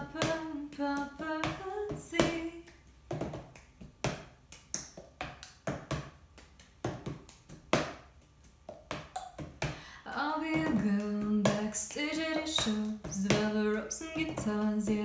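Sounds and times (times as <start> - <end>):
person singing: 10.1 - 15.0.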